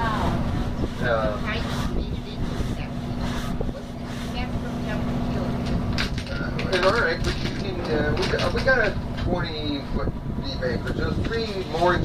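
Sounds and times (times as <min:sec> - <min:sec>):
boat engine idling: 0:00.0 - 0:12.0
voices: 0:00.0 - 0:12.0.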